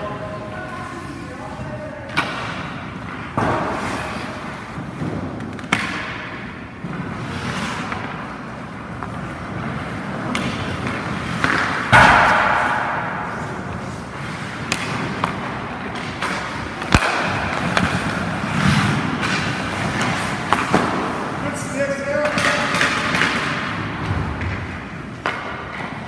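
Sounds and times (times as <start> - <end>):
hockey sticks striking pucks: 0.0 - 26.0
pucks hitting goalie pads: 0.0 - 26.0
skate blades scraping ice: 3.0 - 5.8, 6.8 - 11.9, 12.6 - 26.0.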